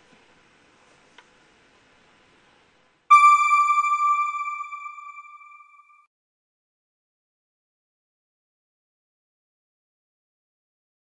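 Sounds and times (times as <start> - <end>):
bright electronic chime: 3.1 - 5.8.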